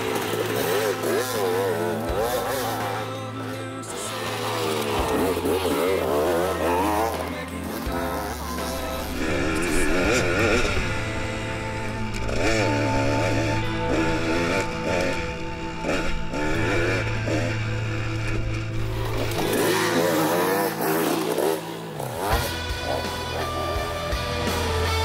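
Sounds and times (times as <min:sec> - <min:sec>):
background music: 0:00.0 - 0:25.0
dirt bike engine revving: 0:00.0 - 0:25.0.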